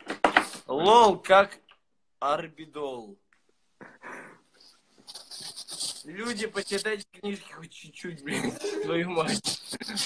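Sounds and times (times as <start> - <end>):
person panting breaths: 3.8 - 5.9.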